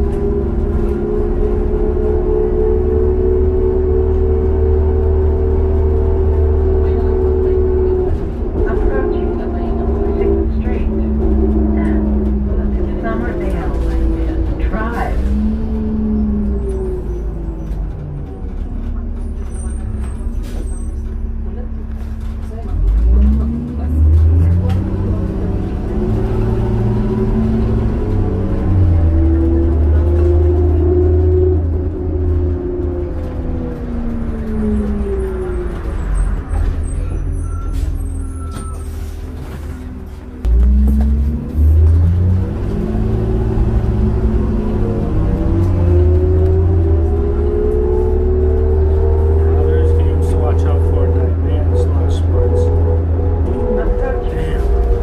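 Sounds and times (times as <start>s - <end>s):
bus engine rumble and whine: 0.0s - 55.0s.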